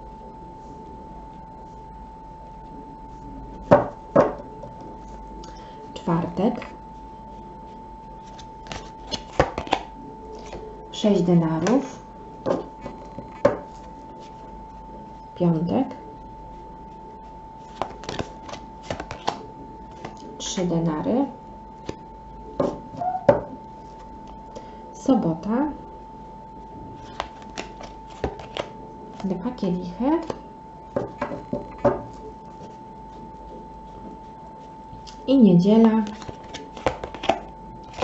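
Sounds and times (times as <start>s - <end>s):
cards snapping and flicking: 8.3s - 10.6s, 17.7s - 19.4s, 27.1s - 28.7s, 36.0s - 38.0s.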